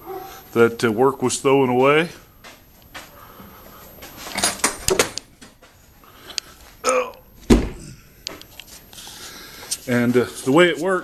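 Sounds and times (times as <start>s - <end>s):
loud thump: 7.4s - 7.8s.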